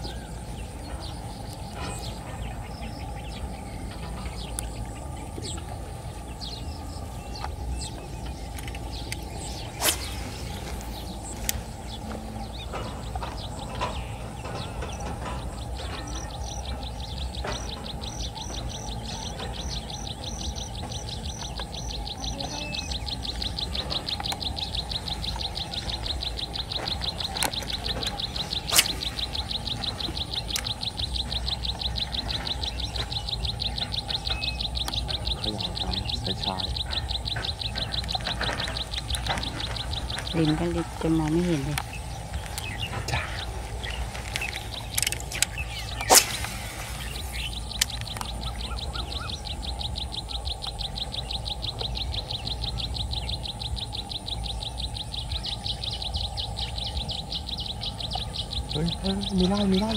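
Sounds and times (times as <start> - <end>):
low outdoor background: 0.0 - 59.9
sharp clicks: 22.9 - 40.7, 41.7 - 48.6.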